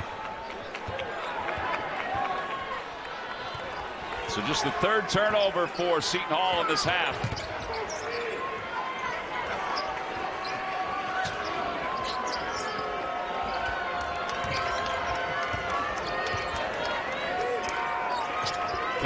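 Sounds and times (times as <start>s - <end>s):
arena crowd noise with voices: 0.0s - 19.0s.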